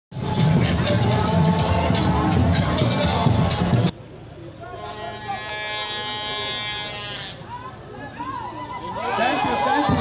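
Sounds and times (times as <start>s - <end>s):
faint murmuring voices: 0.3s - 10.0s
buzzing pitched tone: 4.8s - 7.5s.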